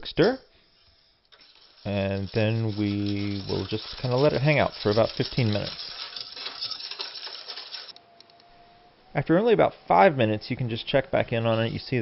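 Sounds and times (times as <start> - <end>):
utensil clinking and scraping pan: 0.0 - 8.0.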